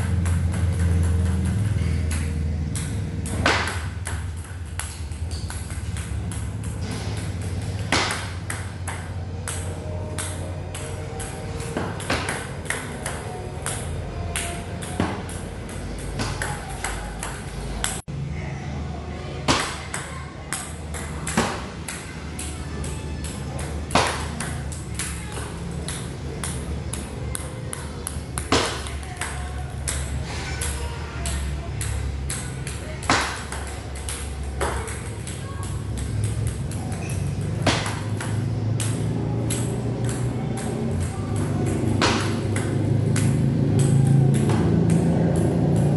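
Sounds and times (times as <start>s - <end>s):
ping pong ball clicks: 0.0s - 18.0s, 19.5s - 45.9s
sharp paddle hit: 2.0s - 18.0s, 23.9s - 26.6s, 41.1s - 45.9s.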